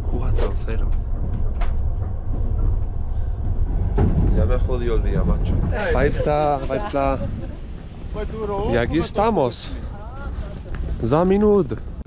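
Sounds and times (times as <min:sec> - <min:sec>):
vehicle rumble: 0:00.0 - 0:12.0.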